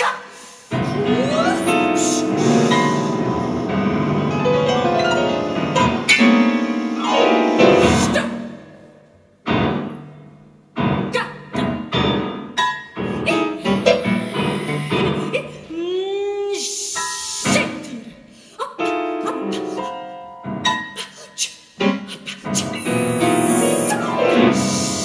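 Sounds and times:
grand piano notes and chords: 0:00.7 - 0:15.7, 0:18.8 - 0:21.0, 0:21.8 - 0:25.0.

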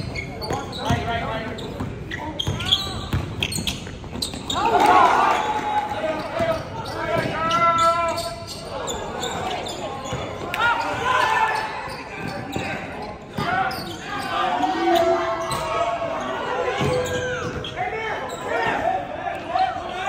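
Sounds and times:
sneakers squeaking: 0:00.0 - 0:20.0.

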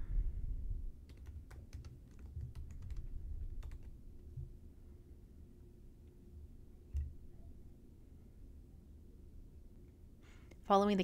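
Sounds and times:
computer keyboard typing: 0:01.0 - 0:04.0.

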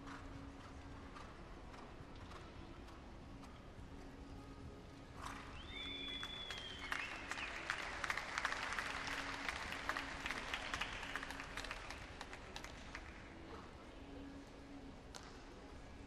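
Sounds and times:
crowd applauding: 0:05.5 - 0:13.2.

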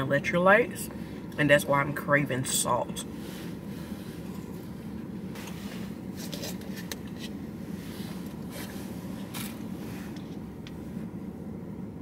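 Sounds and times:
car cabin hum: 0:00.0 - 0:12.0.

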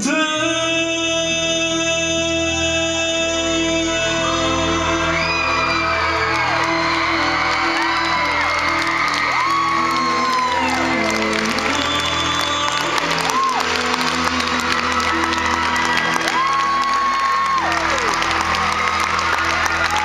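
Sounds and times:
man singing pop ballad: 0:00.0 - 0:07.3, 0:09.7 - 0:16.4
soft band accompaniment: 0:00.0 - 0:20.0
crowd cheering and whooping: 0:04.1 - 0:20.0.

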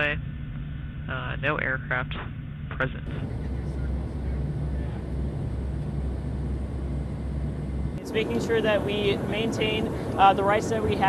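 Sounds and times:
jet cabin engine drone: 0:00.0 - 0:11.0.

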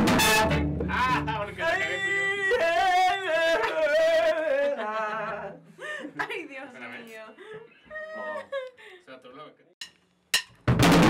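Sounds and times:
wordless singing voice: 0:00.4 - 0:05.7
drum kit ringing: 0:09.8 - 0:11.0.

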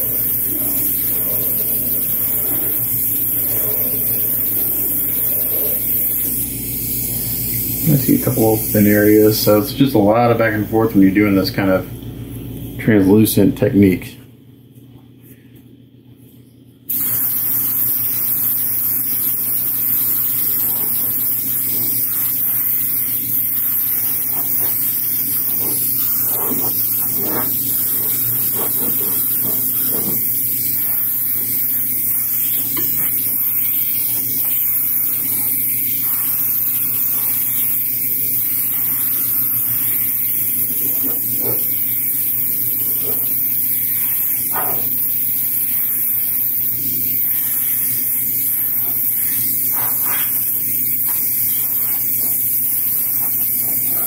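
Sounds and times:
airbrush hissing: 0:00.0 - 0:12.0, 0:16.9 - 0:54.0.

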